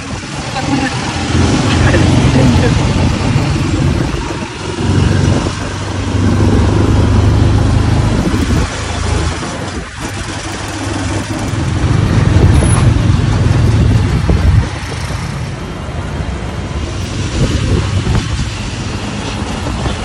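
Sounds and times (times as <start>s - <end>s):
motorcycle engine running: 0.0s - 15.6s.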